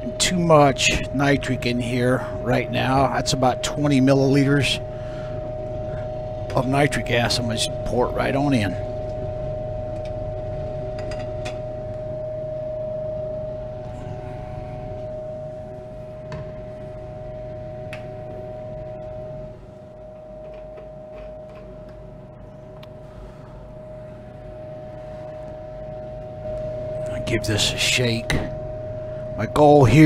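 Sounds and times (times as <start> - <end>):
steady machine hum: 0.0 - 30.0.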